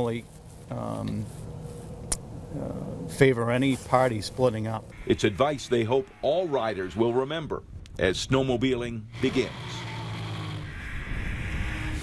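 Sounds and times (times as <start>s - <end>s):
wind rushing over microphone: 10.7s - 12.0s.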